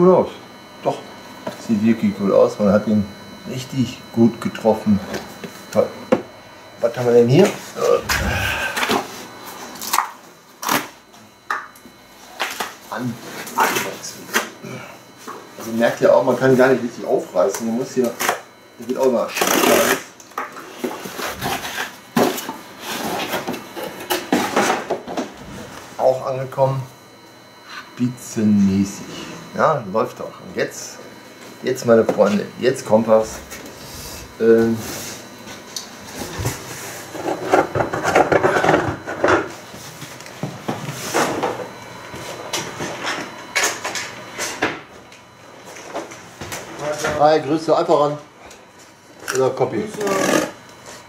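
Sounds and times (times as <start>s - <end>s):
indistinct voice: 7.8s - 9.0s.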